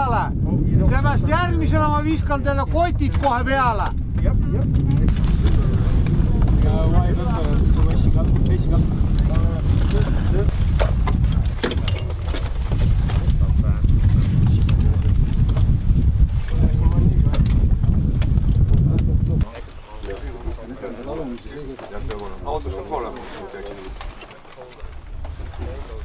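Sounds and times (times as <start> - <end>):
wind buffeting microphone: 0.0 - 26.0
gear clicks and knocks: 6.4 - 15.7, 17.2 - 26.0.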